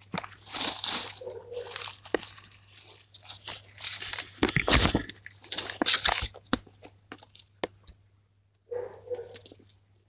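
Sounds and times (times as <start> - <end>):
crunching of dry leaf litter: 0.0 - 7.6.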